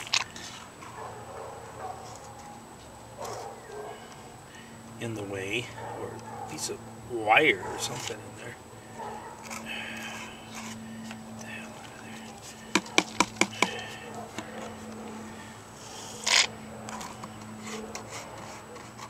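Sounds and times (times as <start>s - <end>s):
steady low hum: 0.0s - 18.7s
plastic scrape: 9.4s - 11.2s, 15.8s - 19.0s.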